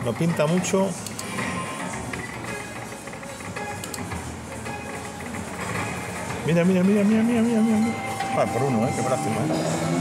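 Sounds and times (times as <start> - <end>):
slot machine music: 4.7 - 10.0.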